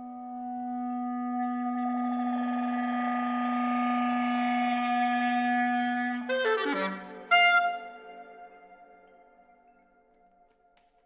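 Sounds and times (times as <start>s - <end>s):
clarinet long low note: 0.0s - 8.7s.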